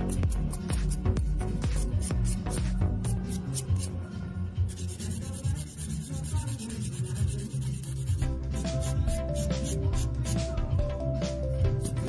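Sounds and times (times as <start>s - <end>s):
nail buffer rubbing fingernail: 0.0s - 4.0s, 4.7s - 10.4s, 11.8s - 12.0s
background music: 0.0s - 12.0s.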